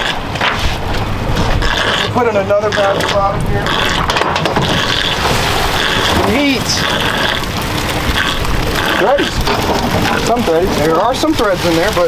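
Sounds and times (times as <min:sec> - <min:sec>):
water rushing: 0:00.0 - 0:12.0
wind rushing: 0:00.2 - 0:11.6.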